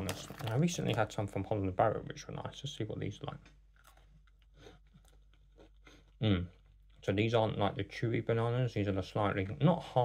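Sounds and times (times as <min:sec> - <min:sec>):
crunching and chewing: 0:03.4 - 0:07.1.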